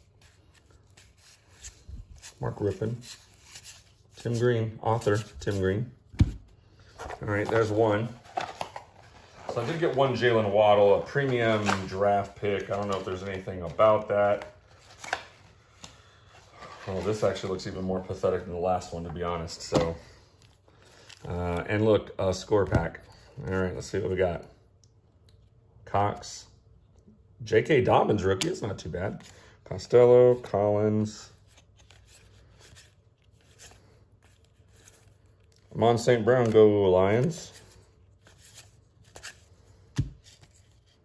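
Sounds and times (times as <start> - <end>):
trading cards sliding and flicking: 0.0 - 4.4
trading cards being handled: 0.0 - 24.2, 28.2 - 41.0.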